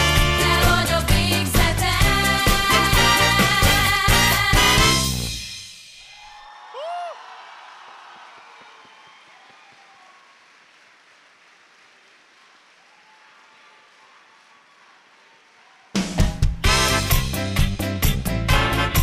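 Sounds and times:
swing dance music: 0.0 - 5.5, 16.0 - 19.0.

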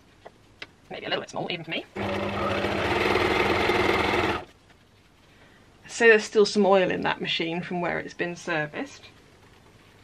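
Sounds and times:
sewing machine stitching: 2.0 - 4.5.

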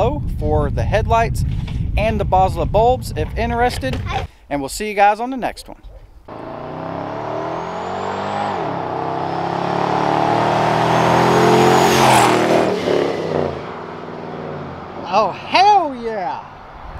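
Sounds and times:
supercharger whine: 6.3 - 15.0
pickup truck accelerating past: 6.3 - 15.1.

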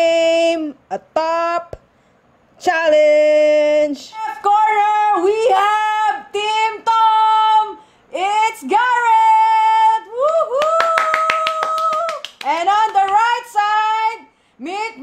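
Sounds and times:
quick hand claps: 10.3 - 13.3.

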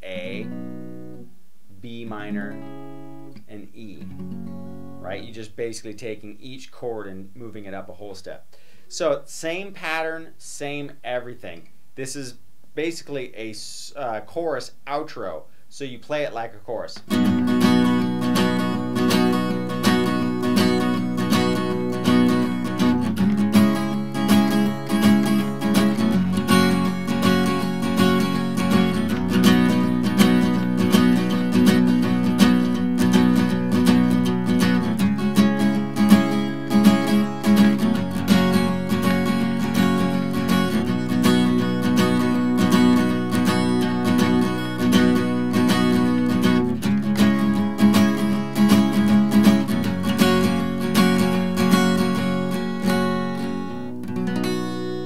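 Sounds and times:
acoustic guitar strumming: 0.0 - 12.2, 16.2 - 55.0
guitar chord ringing: 0.2 - 1.3, 2.3 - 3.4, 17.1 - 55.0.

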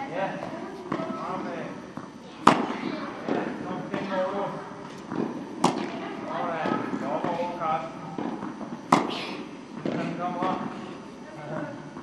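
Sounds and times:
tennis ball struck by racket: 2.0 - 4.1, 5.0 - 6.1, 8.2 - 9.2, 9.8 - 10.8.

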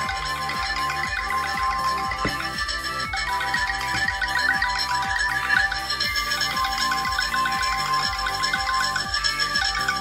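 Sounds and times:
electronic phone ringtone: 0.0 - 10.0.

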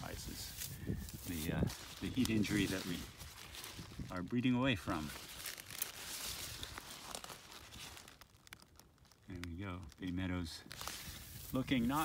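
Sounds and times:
leaves rustling and crinkling: 0.0 - 12.0.

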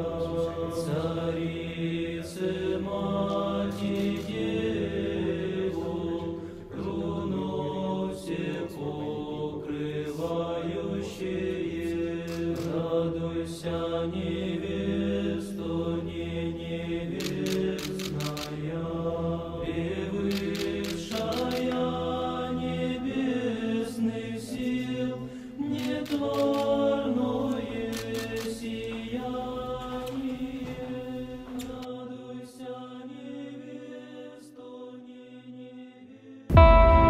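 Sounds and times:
choral chant: 0.0 - 37.0
camera shutter clicks: 17.2 - 18.6, 20.3 - 21.8
low drone: 36.5 - 37.0.

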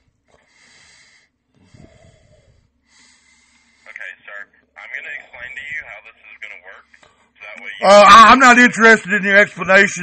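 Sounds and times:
breath-like noise over telephone: 0.0 - 4.3.

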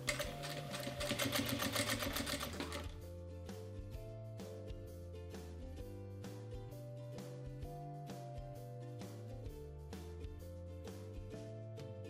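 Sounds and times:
sewing machine stitching: 0.0 - 3.0.

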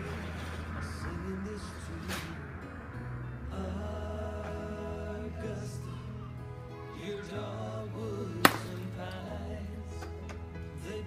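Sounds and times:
song playing: 0.0 - 11.0
golf club striking ball: 8.4 - 8.8.

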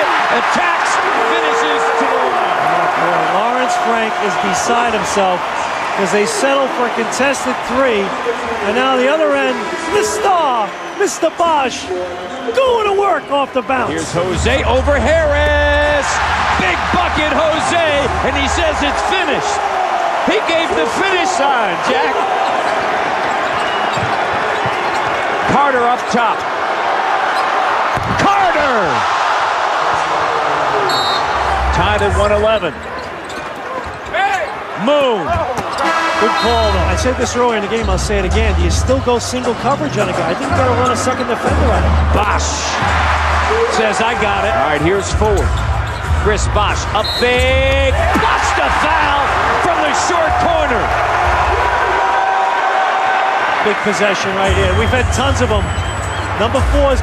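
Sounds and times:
arena crowd noise: 0.0 - 57.0.

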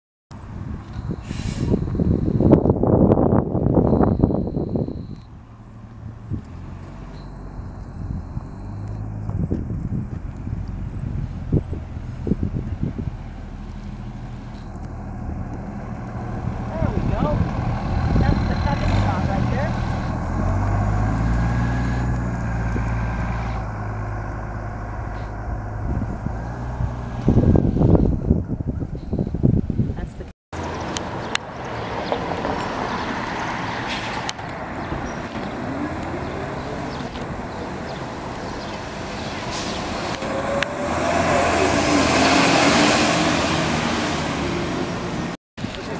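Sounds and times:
street traffic: 0.3 - 45.9
bus engine accelerating: 0.4 - 29.9, 30.6 - 45.9.

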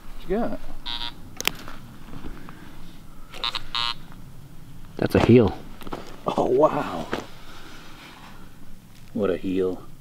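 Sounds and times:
pinpointer buzzing beeps: 0.8 - 1.2, 3.3 - 4.2.

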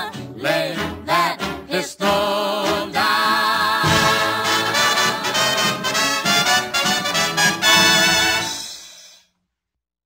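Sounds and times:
swing band with brass: 0.1 - 8.8.

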